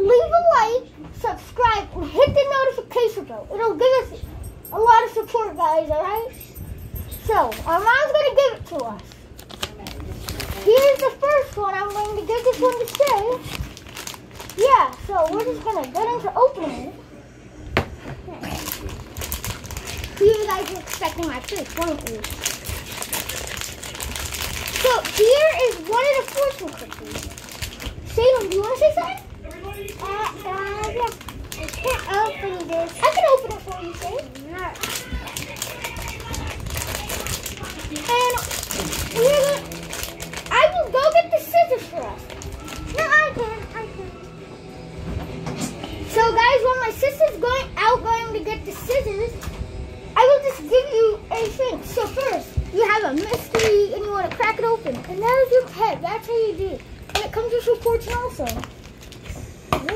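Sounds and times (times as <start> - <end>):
plastic packaging crinkling: 8.6 - 16.2, 18.5 - 43.3, 53.0 - 55.7, 56.8 - 59.3.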